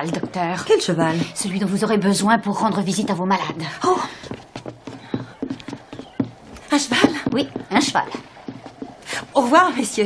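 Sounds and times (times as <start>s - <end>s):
horse hooves clip-clopping: 0.0s - 1.8s, 2.4s - 10.0s.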